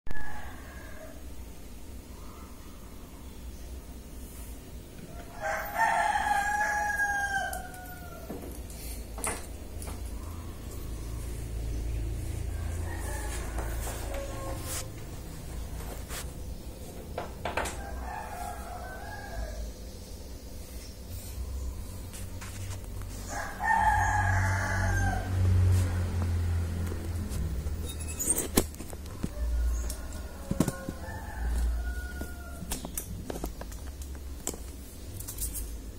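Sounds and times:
rooster crowing: 0.1s - 1.4s, 5.1s - 8.6s, 10.2s - 15.8s, 17.6s - 19.8s, 23.2s - 27.2s, 29.0s - 32.9s.

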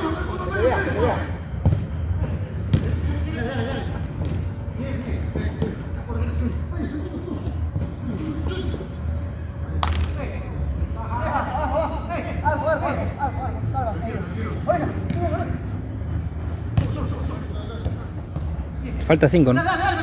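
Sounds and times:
football being kicked: 1.6s - 2.0s, 2.7s - 3.0s.

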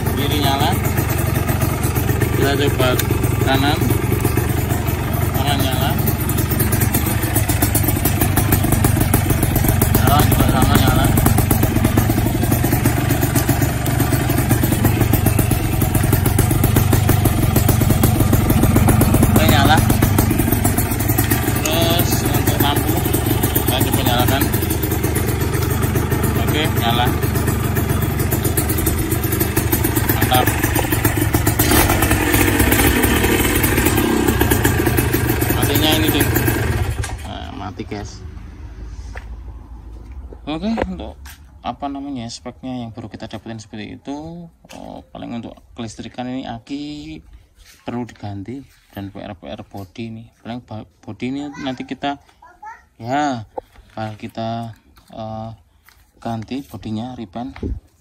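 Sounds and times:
two-stroke engine idling: 0.0s - 38.8s.

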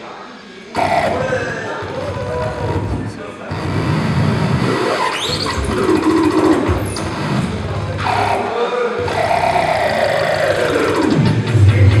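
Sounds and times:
low pulsing electronic loop: 0.8s - 12.0s.

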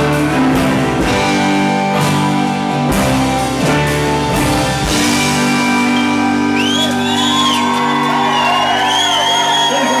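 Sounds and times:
live band holding chord: 0.0s - 10.0s
audience whooping: 5.4s - 10.0s.

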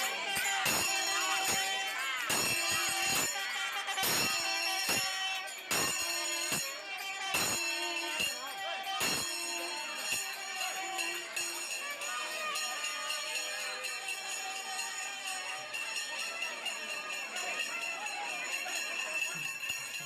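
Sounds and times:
procession music: 0.0s - 19.9s
bells jingling and ringing: 0.0s - 20.0s
crowd of voices: 0.0s - 20.0s.

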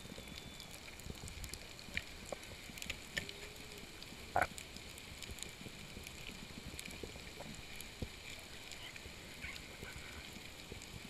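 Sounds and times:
faint clicks and crackles: 0.0s - 11.0s.

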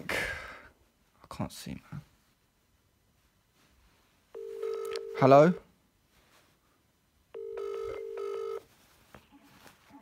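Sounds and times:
telephone ringing tone: 4.3s - 5.6s, 7.3s - 8.6s.

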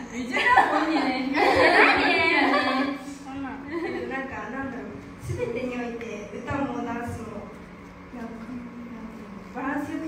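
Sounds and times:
woman talking into microphone: 1.9s - 10.0s.

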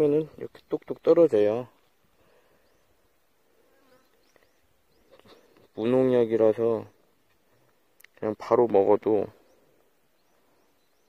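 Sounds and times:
faint insect buzz: 2.1s - 5.9s.

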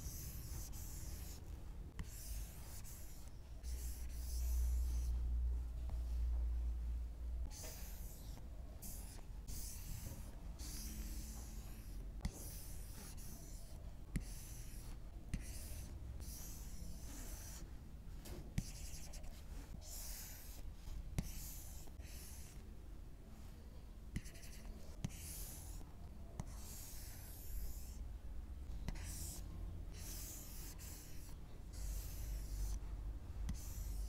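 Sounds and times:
stylus scratching on glass screen: 0.0s - 5.2s, 7.4s - 17.7s, 18.6s - 22.6s, 28.9s - 32.8s, 33.4s - 34.0s.

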